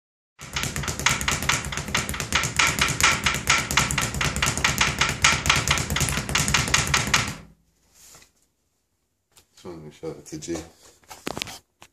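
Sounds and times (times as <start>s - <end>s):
speed bag rattling: 0.4s - 7.5s.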